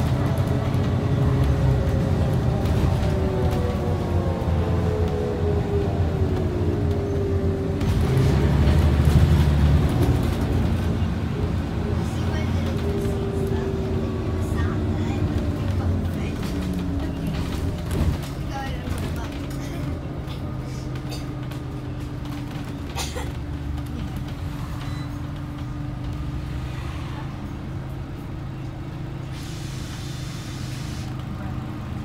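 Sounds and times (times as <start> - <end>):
bus engine drone: 0.0 - 32.0.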